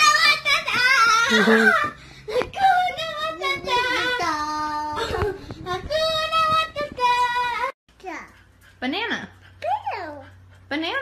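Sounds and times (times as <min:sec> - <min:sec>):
small child singing: 0:00.0 - 0:08.2.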